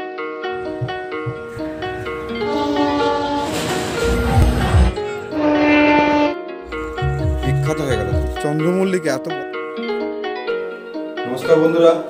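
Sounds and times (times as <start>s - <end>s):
music: 0.0s - 12.0s
moving train noise: 0.6s - 6.3s
train horn: 2.3s - 6.4s.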